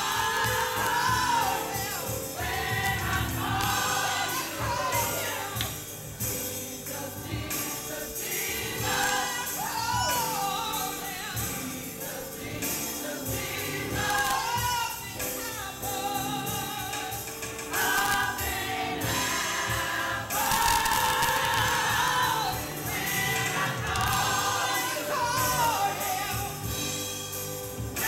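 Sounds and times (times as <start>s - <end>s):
gospel choir singing: 0.0s - 28.0s
instrumental accompaniment with beat: 0.0s - 28.0s.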